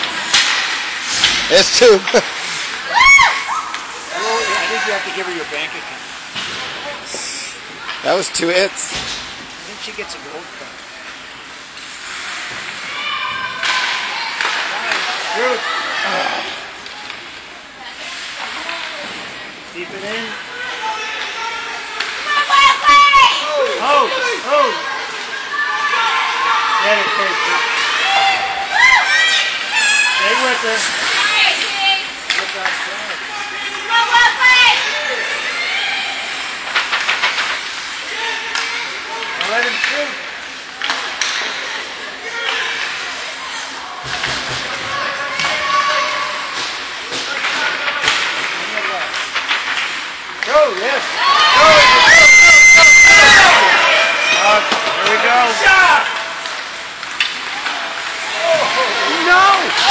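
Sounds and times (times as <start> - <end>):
murmur of spectators: 0.0 - 59.9
high shout: 2.8 - 3.8, 51.2 - 54.4.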